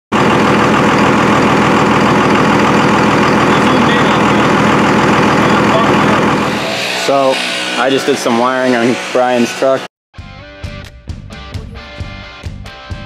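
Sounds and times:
diesel engine idling: 0.1s - 7.0s.

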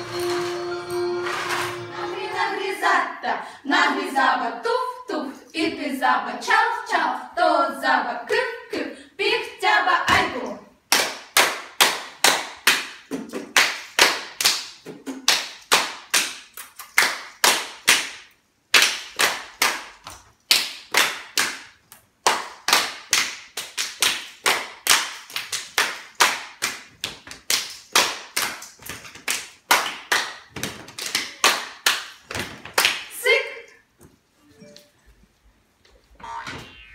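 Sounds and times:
people clapping in rhythm: 10.2s - 33.2s.

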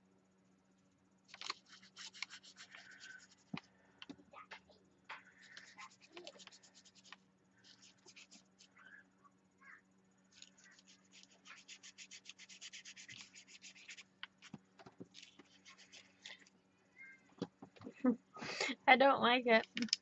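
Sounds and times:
paintbrush scrubbing on paper: 1.4s - 3.6s, 5.2s - 8.8s, 10.3s - 14.5s, 15.2s - 16.4s.

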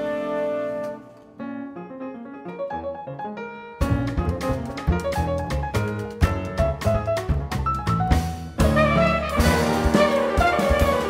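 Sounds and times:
solo jazz piano: 0.0s - 11.0s
band groove: 3.8s - 11.0s
drum kit with cymbals: 3.8s - 11.0s.

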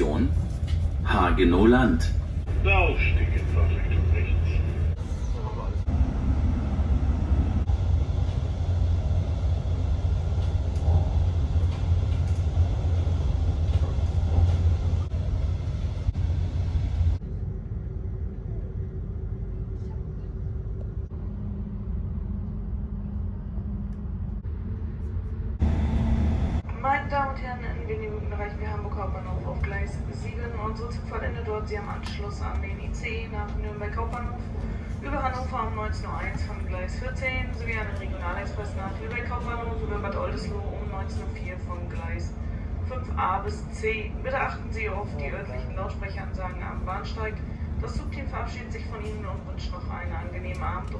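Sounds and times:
recorded announcement: 0.0s - 6.0s, 26.6s - 50.9s
train wheels rumbling on track: 0.0s - 17.2s.

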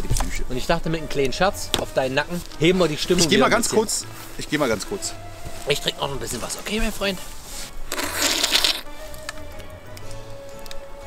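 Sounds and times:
background music with held note: 0.3s - 11.0s
water splashing from plastic cup: 7.9s - 8.9s.

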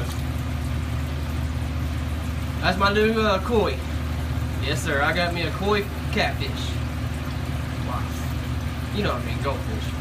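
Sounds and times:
low motor hum: 0.0s - 10.0s
water pouring into tank: 0.0s - 10.0s.

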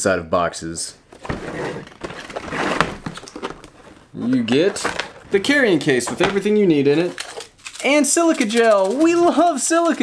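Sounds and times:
cardboard box lid sliding: 1.2s - 4.0s.

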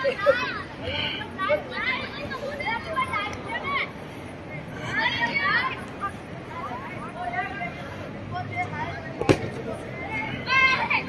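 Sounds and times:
children calling and chattering: 0.0s - 11.0s
outdoor crowd noise: 0.0s - 11.0s.

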